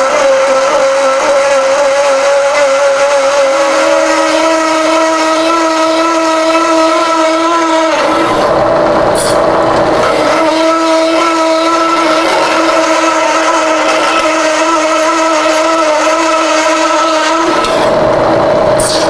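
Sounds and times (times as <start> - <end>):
hole saw squealing through steel: 0.0 - 8.6, 9.2 - 18.0.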